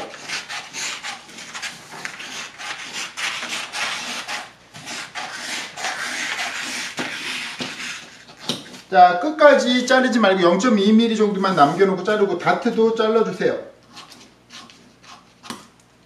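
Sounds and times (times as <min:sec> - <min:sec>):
scissors cutting paper: 0:00.0 - 0:08.9, 0:13.9 - 0:15.7.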